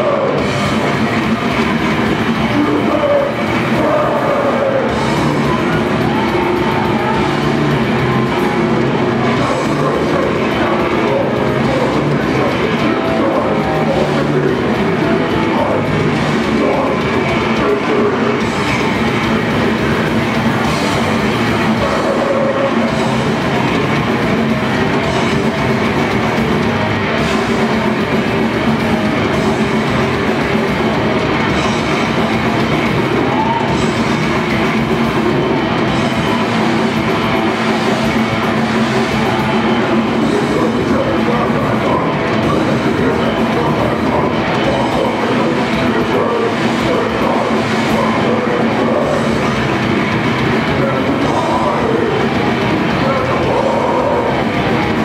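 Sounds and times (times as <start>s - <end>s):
distorted electric guitars: 0.0s - 55.0s
drum kit: 0.0s - 55.0s
vocals: 0.0s - 55.0s.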